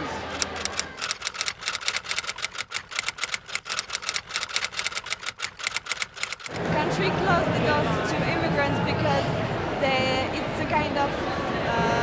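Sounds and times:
typewriter typing clicks: 0.3s - 6.6s.

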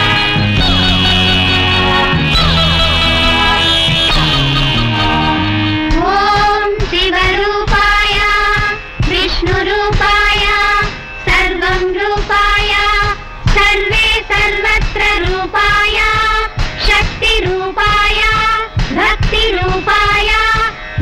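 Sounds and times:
woman singing high-pitched: 5.9s - 20.7s.

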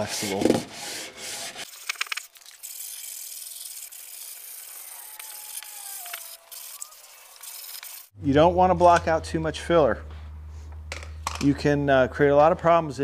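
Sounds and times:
sandpaper rubbing on filler: 0.0s - 1.8s, 3.3s - 8.1s.

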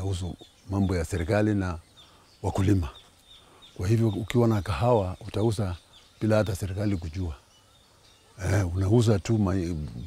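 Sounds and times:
man talking: 0.0s - 1.8s, 2.4s - 3.0s, 3.8s - 7.4s, 8.4s - 10.0s.

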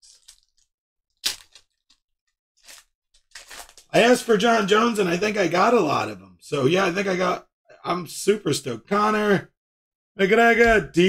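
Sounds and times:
foil wrapper crinkling: 0.0s - 2.0s, 2.6s - 3.9s.

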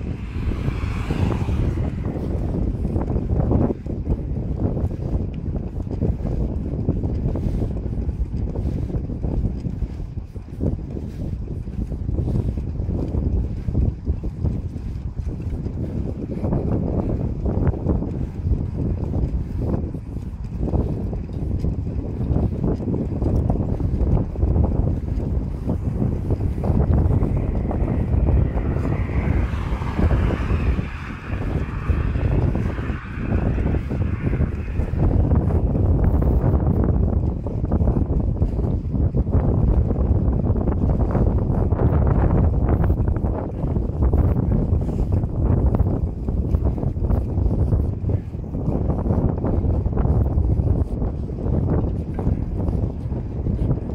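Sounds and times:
car tyre hiss passing: 0.0s - 2.2s, 25.6s - 35.6s
wind buffeting microphone: 0.0s - 53.9s.

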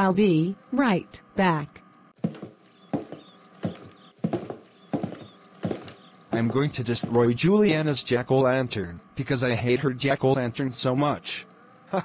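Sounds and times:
footsteps on wooden floor: 2.2s - 7.4s.

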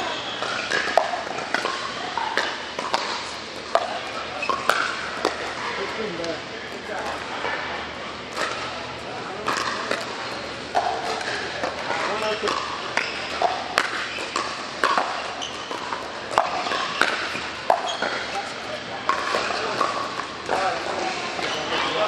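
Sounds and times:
paddles hitting ball pops: 0.4s - 7.2s, 8.3s - 21.8s
chatter of voices: 1.8s - 13.0s, 16.1s - 22.0s.

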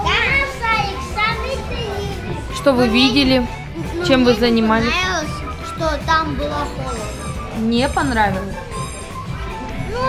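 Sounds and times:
girls talking and calling out: 0.0s - 8.7s.

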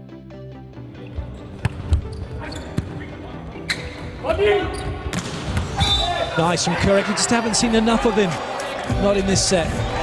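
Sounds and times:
arena music: 0.0s - 10.0s
indoor sports hall noise: 1.1s - 10.0s.

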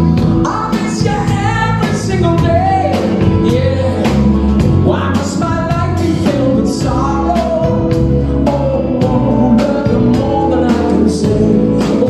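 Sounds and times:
drum beat: 0.0s - 8.1s
man singing live: 0.0s - 12.0s
rock band playing: 0.0s - 12.0s.

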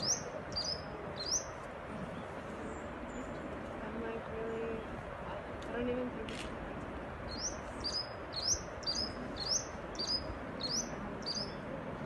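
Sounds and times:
songbird chirping: 0.0s - 5.0s, 7.3s - 11.8s
steady background hiss: 0.0s - 12.0s.

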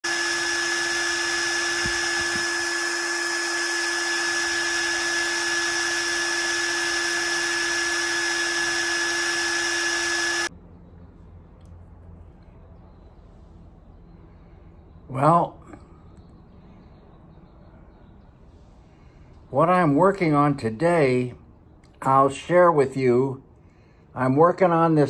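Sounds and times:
electric power tool whirring: 0.0s - 10.5s.

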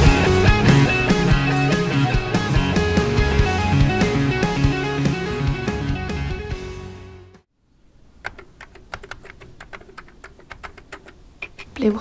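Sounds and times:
typing on computer keyboard: 8.2s - 11.8s.

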